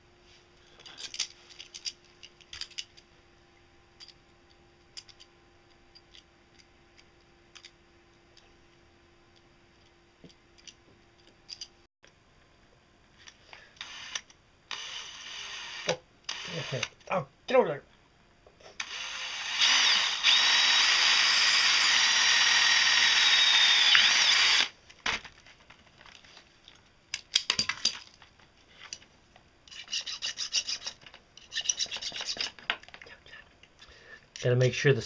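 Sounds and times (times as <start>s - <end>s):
cordless drill boring through metal: 13.8s - 16.9s, 18.8s - 24.7s
file scraping metal: 29.7s - 32.6s.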